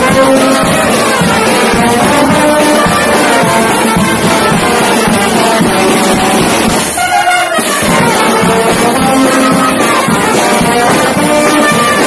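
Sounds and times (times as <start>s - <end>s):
drums and cymbals: 0.0s - 12.0s
trumpets and trombones: 0.0s - 12.0s.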